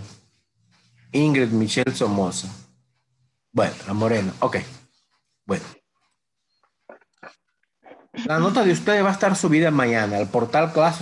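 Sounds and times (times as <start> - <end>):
man speaking: 8.2 - 11.0.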